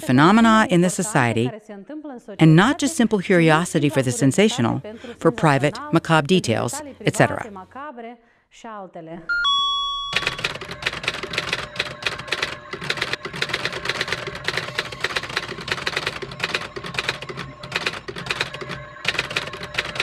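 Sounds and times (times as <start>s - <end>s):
bell-like chime: 9.3s - 20.0s
typewriter key clicks: 10.2s - 20.0s.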